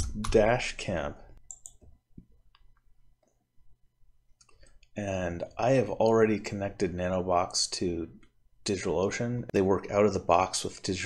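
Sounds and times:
quiet room hum: 0.0s - 11.0s
faint computer clicks: 1.4s - 3.4s.

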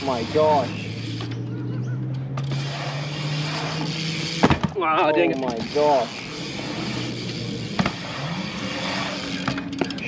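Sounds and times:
bike tyres rolling on concrete: 0.0s - 10.0s.

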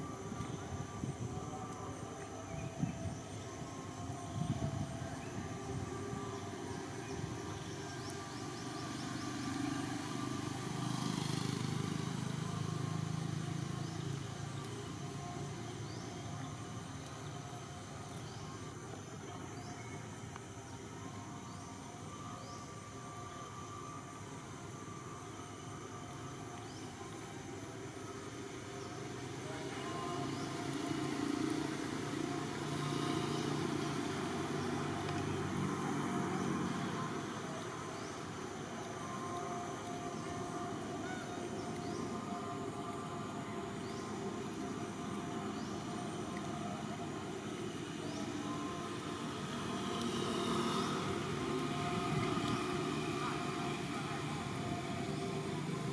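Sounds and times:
outdoor background: 0.0s - 55.9s
passing traffic engine rumble: 0.0s - 55.9s.

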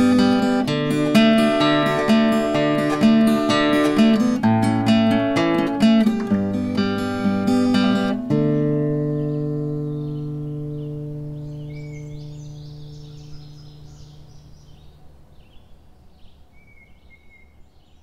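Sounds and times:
acoustic guitar chord ringing: 0.0s - 15.0s
faint bird chirps: 7.0s - 18.0s.

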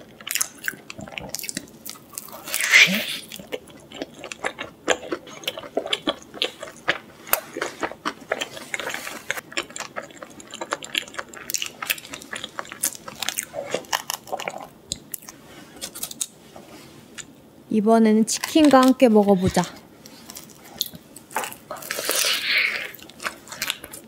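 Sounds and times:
person chewing crunchy food: 0.0s - 16.4s, 19.5s - 24.0s.

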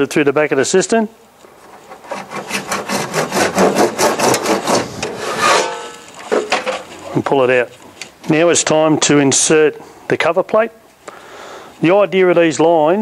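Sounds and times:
hand saw cutting plastic pipe: 1.5s - 6.8s.

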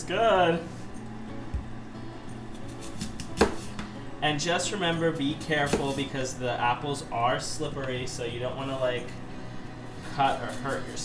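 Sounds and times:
soft background music: 0.0s - 11.0s
knife cutting apple on board: 2.5s - 3.9s, 5.4s - 6.1s.

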